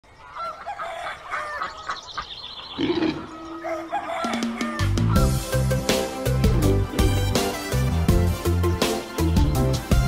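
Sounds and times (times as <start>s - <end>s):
chickens clucking: 0.0s - 5.3s.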